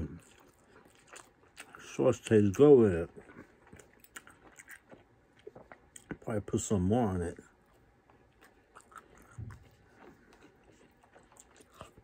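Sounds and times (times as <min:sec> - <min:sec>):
person chewing: 0:00.0 - 0:06.3, 0:07.4 - 0:12.0.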